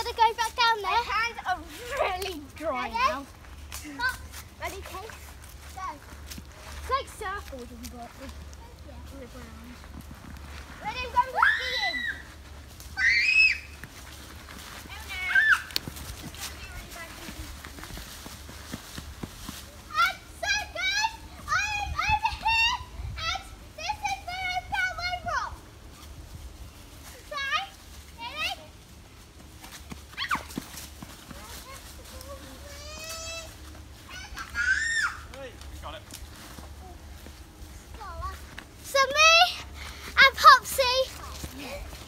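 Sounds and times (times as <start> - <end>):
child's high-pitched squeal: 11.2 - 12.3, 13.0 - 13.8, 15.1 - 15.7, 30.2 - 30.5, 34.1 - 35.3.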